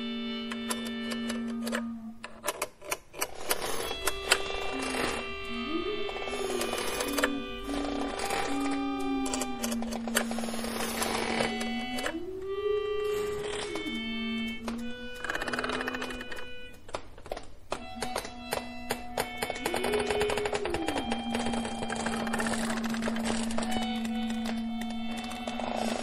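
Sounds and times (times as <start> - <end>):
experimental electronic music: 3.9 - 16.9, 18.0 - 26.0.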